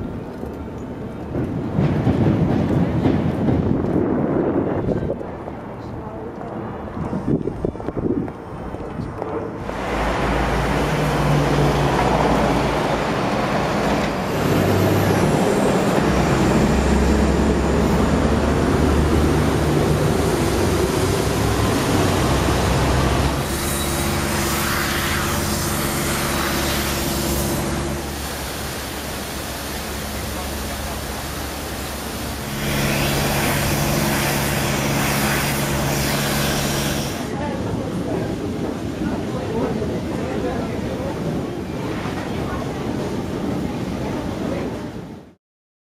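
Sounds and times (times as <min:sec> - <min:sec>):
traffic engine hum: 0:03.9 - 0:37.7.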